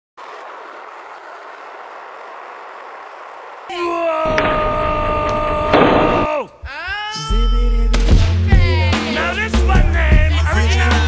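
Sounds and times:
skateboard wheels rolling on pavement: 0.2s - 6.4s.

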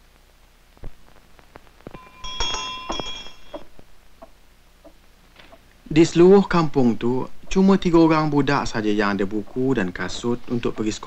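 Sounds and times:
hand bell ringing: 2.0s - 3.7s.

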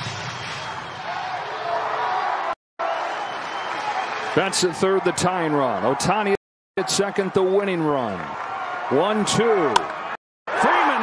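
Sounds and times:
crowd roaring: 0.6s - 7.3s, 8.4s - 11.0s.

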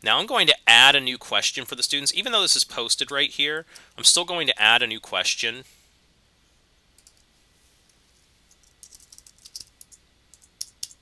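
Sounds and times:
faint keyboard typing: 6.9s - 7.3s, 7.9s - 11.0s.

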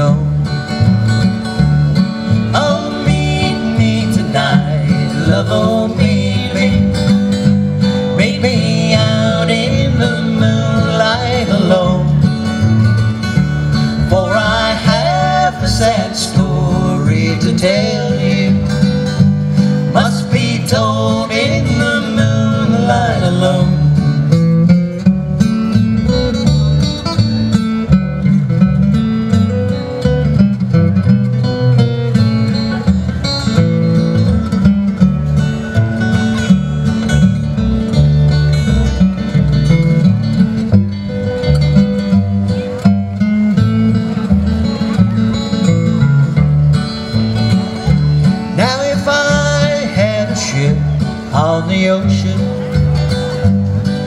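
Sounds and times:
acoustic guitar playing: 0.0s - 54.0s
upright bass plucking: 0.0s - 54.0s.

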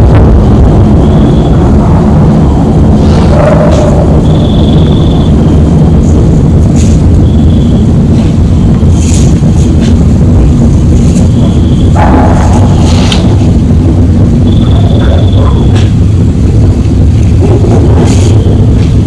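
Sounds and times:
loud low rumble: 0.0s - 19.0s.

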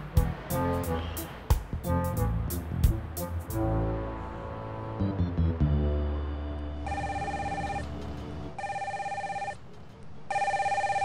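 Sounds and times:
mobile phone ringing: 6.8s - 9.7s, 10.3s - 11.0s.

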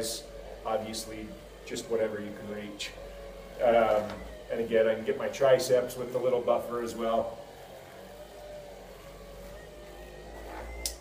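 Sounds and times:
electric buffer humming: 0.0s - 11.0s.

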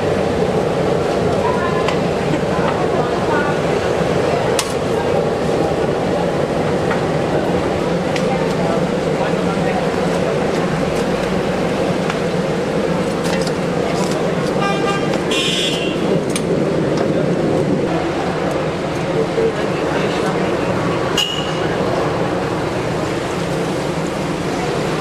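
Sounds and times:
steady traffic: 0.0s - 25.0s
vehicle horn: 14.6s - 16.2s.

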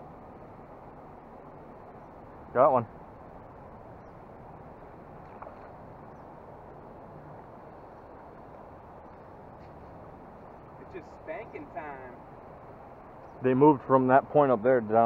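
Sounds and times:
river current rushing: 0.0s - 15.0s.

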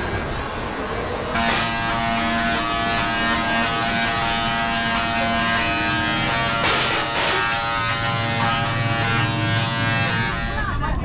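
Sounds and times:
tesla coil electric buzz: 0.6s - 10.8s.

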